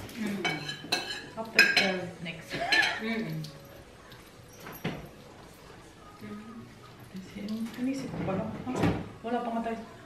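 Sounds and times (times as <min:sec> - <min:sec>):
cutlery clinking on plates: 0:00.0 - 0:05.3.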